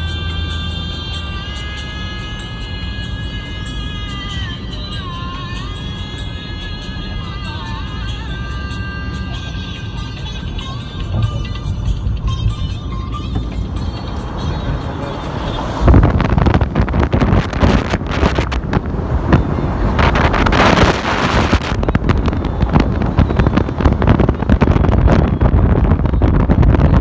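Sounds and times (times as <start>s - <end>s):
car road noise: 0.0s - 27.0s
wind buffeting microphone: 11.0s - 27.0s.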